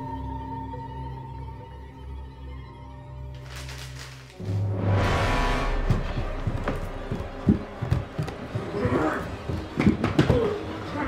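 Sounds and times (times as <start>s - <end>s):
irregular thumps and knocks: 5.8s - 10.7s.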